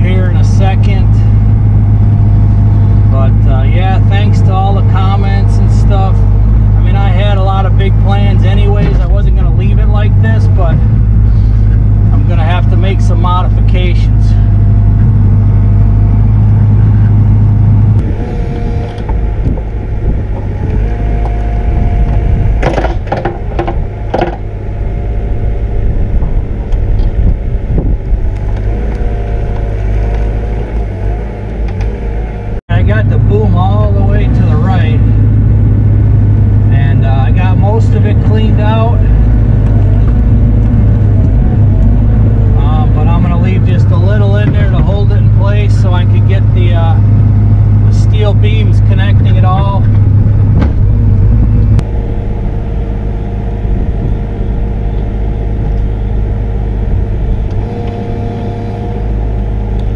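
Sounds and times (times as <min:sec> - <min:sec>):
excavator diesel engine under load: 0:00.0 - 0:59.9
hydraulics working: 0:00.0 - 0:59.9.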